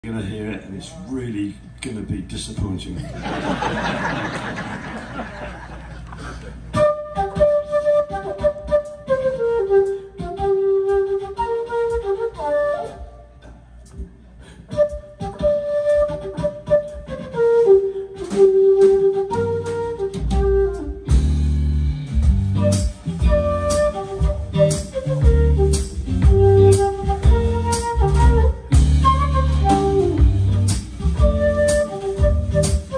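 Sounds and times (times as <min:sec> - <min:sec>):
band with bass and drums: 0:02.6 - 0:32.9
flute melody: 0:06.7 - 0:13.6, 0:14.7 - 0:32.9.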